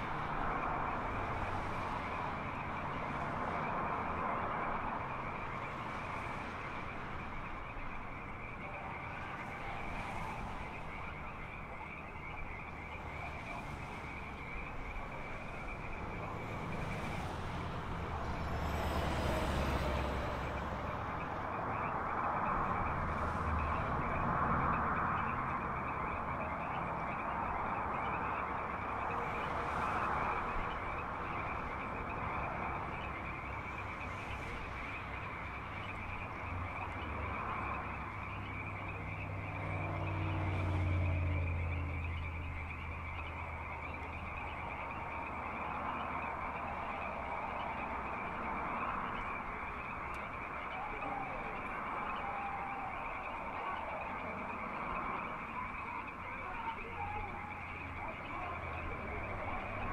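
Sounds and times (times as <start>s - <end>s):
frogs calling: 0.0s - 59.9s
passing car rumble: 0.0s - 59.9s.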